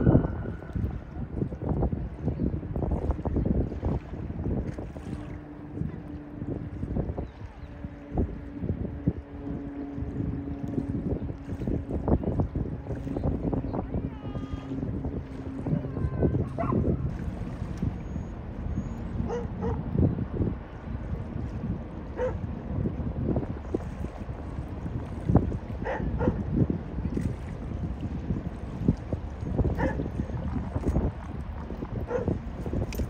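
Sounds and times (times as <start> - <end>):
steady low tone: 0.0 - 3.5, 4.2 - 33.0
wind buffeting microphone: 0.0 - 33.0.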